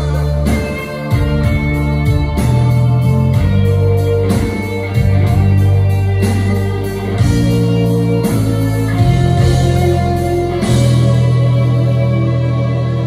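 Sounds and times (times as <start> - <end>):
live rock band instrumental: 0.0 - 13.0.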